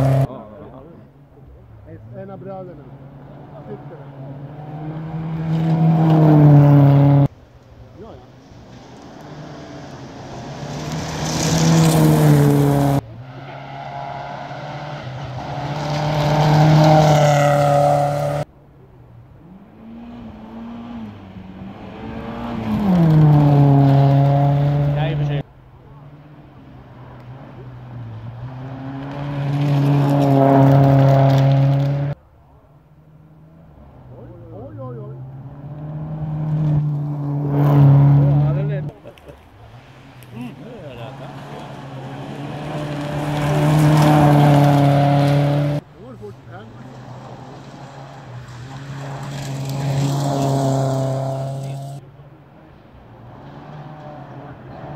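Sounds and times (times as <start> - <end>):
rally cars passing at full throttle: 0.0 - 54.9.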